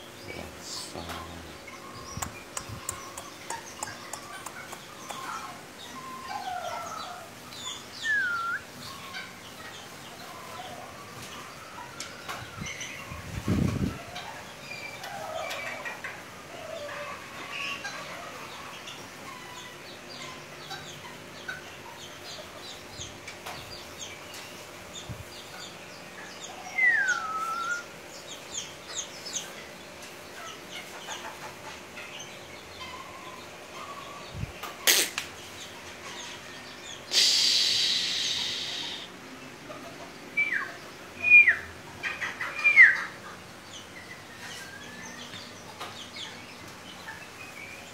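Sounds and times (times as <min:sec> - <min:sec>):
chicks peeping: 0:00.0 - 0:47.9.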